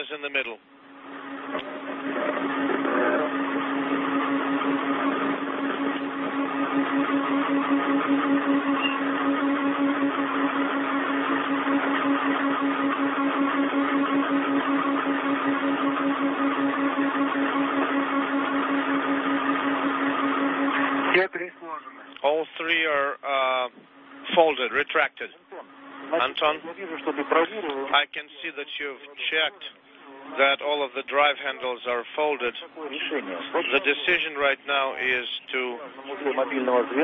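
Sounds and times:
radio static hiss with hum: 0.0s - 6.4s, 20.6s - 37.0s.

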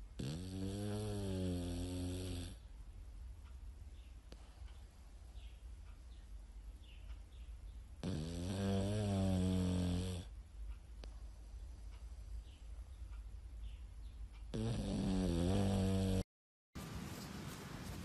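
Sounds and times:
dog snoring: 0.2s - 2.6s, 8.0s - 10.3s, 14.5s - 16.3s.

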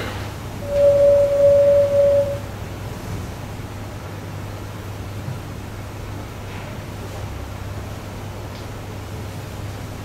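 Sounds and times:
low hum and hiss: 0.0s - 10.0s
steady computer tone: 0.6s - 2.5s.

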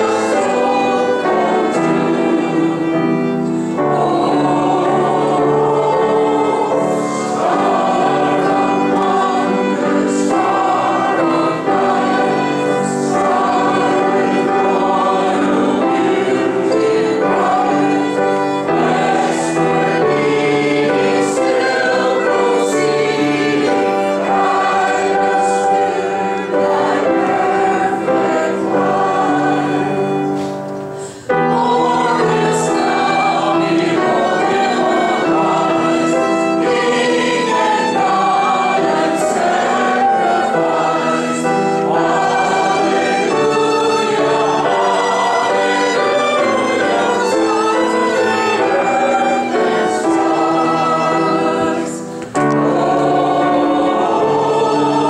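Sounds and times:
congregation singing a hymn: 0.0s - 55.0s
piano: 0.0s - 55.0s
violin: 0.0s - 55.0s.

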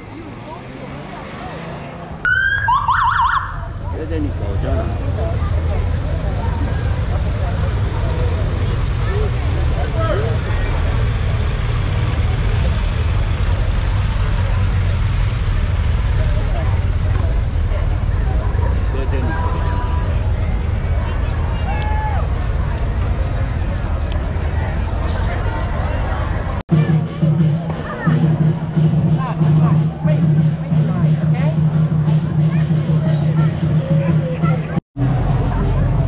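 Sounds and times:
crowd chatter: 0.0s - 36.0s
motorcycle engines rumbling: 0.0s - 36.0s
police siren whoops: 2.3s - 3.6s.

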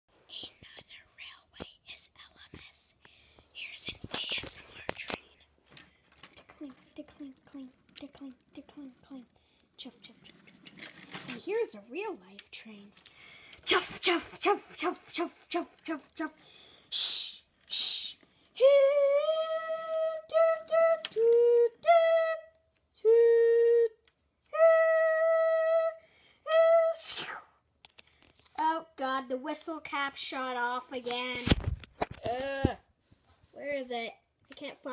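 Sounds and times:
person whispering: 0.3s - 5.5s, 14.8s - 18.2s
voiced hissing shh: 16.4s - 18.2s.

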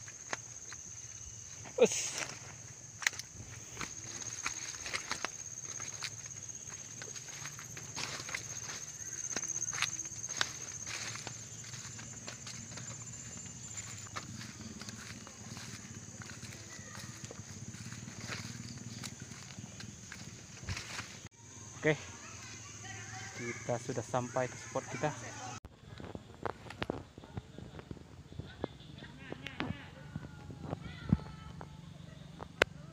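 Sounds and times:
footsteps on dirt path: 0.0s - 21.3s
plants rustling: 0.0s - 21.3s
high-pitched insect drone: 0.0s - 25.6s.

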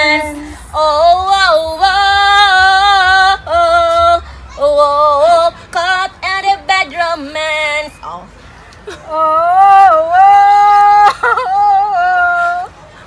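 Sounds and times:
women singing a cappella: 0.0s - 8.3s, 8.9s - 12.8s.

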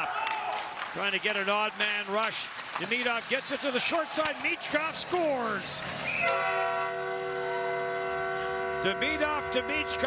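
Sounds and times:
commentator talking: 1.0s - 5.8s, 8.8s - 10.0s
arena goal horn: 6.1s - 10.0s.

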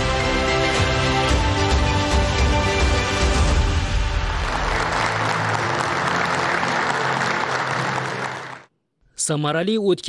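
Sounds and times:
applause: 4.0s - 8.7s.

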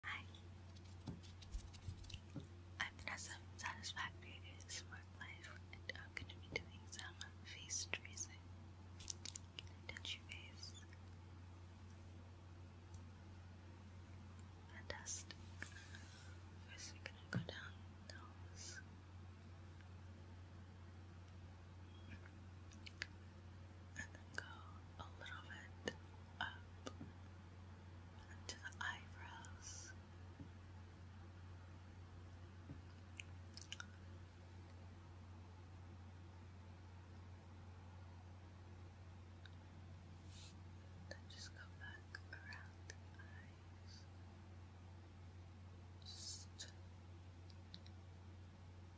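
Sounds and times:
close whispering: 0.0s - 0.4s, 2.8s - 8.4s, 9.6s - 11.0s, 14.7s - 18.9s, 24.0s - 26.7s, 28.2s - 30.0s, 41.1s - 44.1s, 46.0s - 46.8s
steady low hum: 0.0s - 48.9s.

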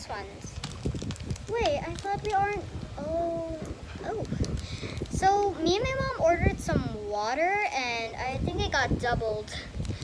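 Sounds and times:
plastic packaging rustling: 0.0s - 5.6s, 9.7s - 10.0s
child saying um: 1.5s - 9.8s.

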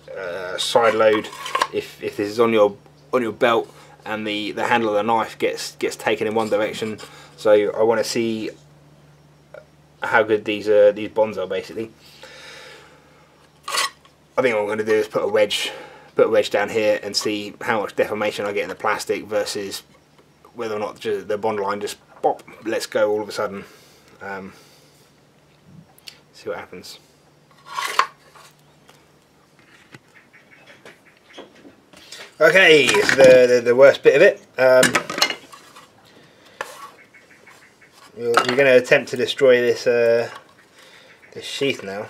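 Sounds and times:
knife sliding out of plastic sheath: 27.5s - 28.5s.

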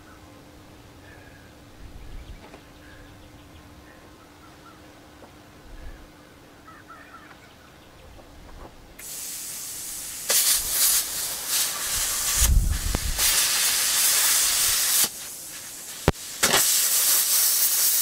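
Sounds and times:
cutting torch hissing: 9.0s - 18.0s.

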